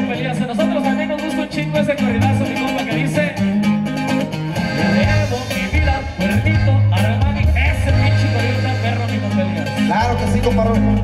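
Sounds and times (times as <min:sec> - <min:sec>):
button accordion: 0:00.0 - 0:11.0
drums: 0:00.0 - 0:11.0
electric bass line: 0:00.0 - 0:11.0
guitar: 0:00.0 - 0:11.0.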